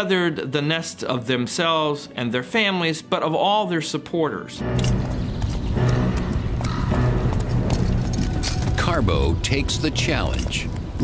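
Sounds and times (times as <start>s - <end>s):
steady low rumble: 4.6s - 11.0s
horses' hooves clopping: 4.8s - 11.0s.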